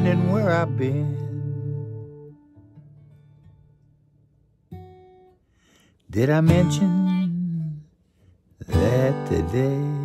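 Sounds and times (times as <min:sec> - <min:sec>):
guitar chord plucked: 0:00.0 - 0:03.8
acoustic guitar notes: 0:00.0 - 0:10.0.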